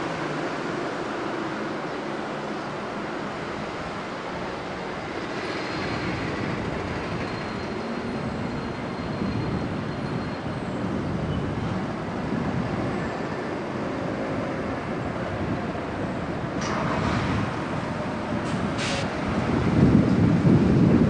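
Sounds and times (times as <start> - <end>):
distant train rumble: 0.0 - 21.0.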